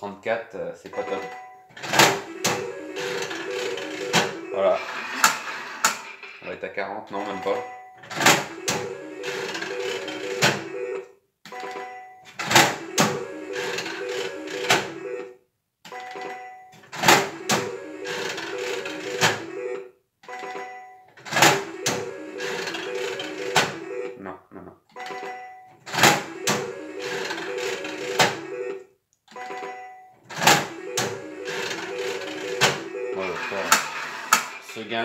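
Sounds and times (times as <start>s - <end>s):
slot machine beeping tune: 0.9s - 5.2s, 7.1s - 24.2s, 25.0s - 34.6s
slot machine reels clattering: 1.2s - 6.4s, 7.1s - 11.0s, 11.6s - 15.3s, 16.0s - 24.1s, 25.0s - 28.8s, 29.4s - 34.8s.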